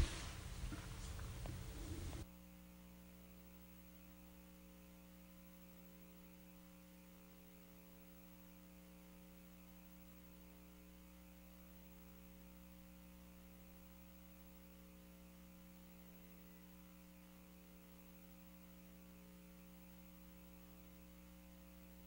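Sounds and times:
faint electrical hum: 0.0s - 22.0s.

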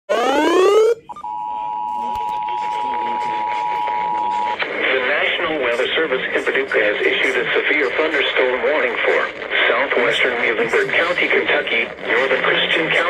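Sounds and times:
rising swept tone: 0.1s - 1.1s
announcer speaking: 0.1s - 1.2s
two-tone alert signal: 0.1s - 4.5s.

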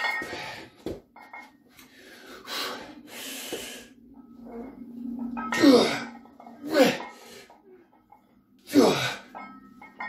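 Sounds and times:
man breathing hard: 1.8s - 4.0s.

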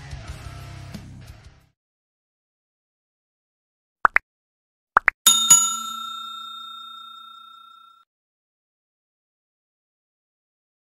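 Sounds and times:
bright bell ding: 5.3s - 8.0s.

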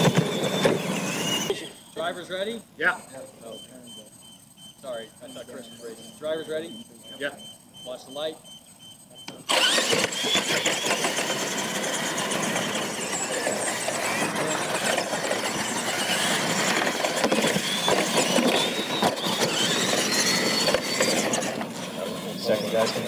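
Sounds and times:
tyres rushing on dirt: 0.0s - 2.6s, 9.4s - 23.0s
electric motors whining: 0.0s - 23.0s.

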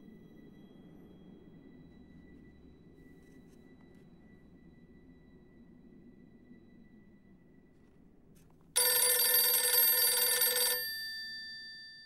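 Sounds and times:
telephone bell ringing: 8.8s - 12.0s.

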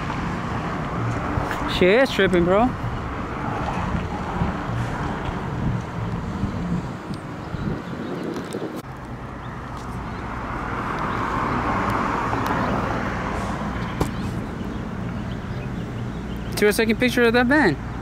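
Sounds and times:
wind noise on microphone: 0.0s - 8.9s
road traffic: 0.0s - 18.0s
vehicle passing: 0.0s - 18.0s.

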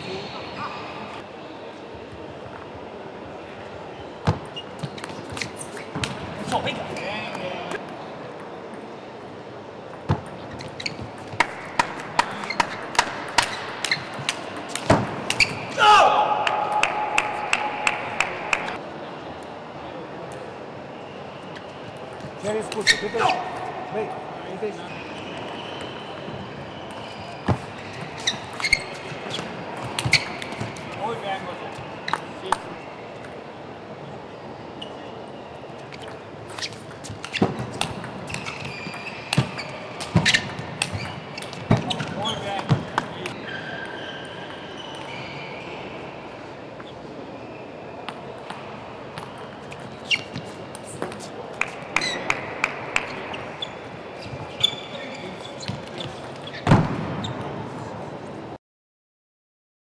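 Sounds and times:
table tennis ball hitting rackets: 10.0s - 15.6s, 36.0s - 44.0s.

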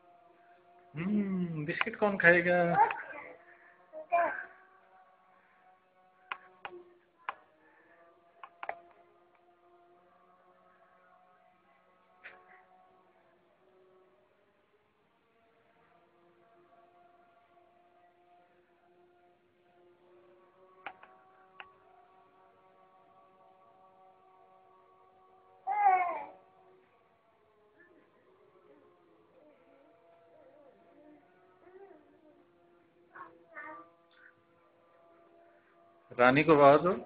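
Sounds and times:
faint steady hum: 0.0s - 37.0s
faint steady tones: 0.0s - 37.0s
sharp clicks: 20.8s - 21.7s.

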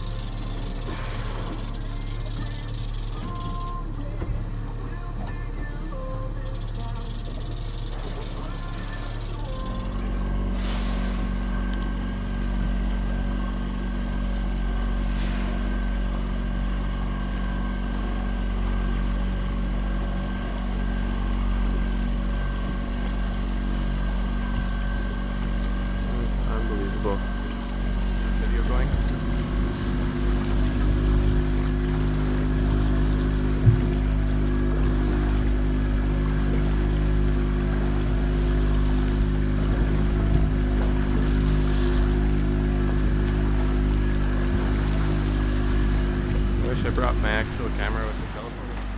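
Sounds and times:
water wash: 0.0s - 4.7s, 6.0s - 48.9s
boat engine humming: 0.0s - 48.9s
wind: 0.0s - 48.9s.

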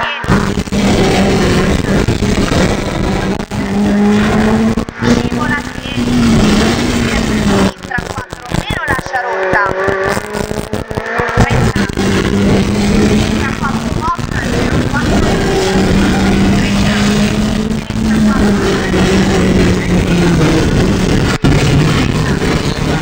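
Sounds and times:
car engine revving: 0.0s - 23.0s.

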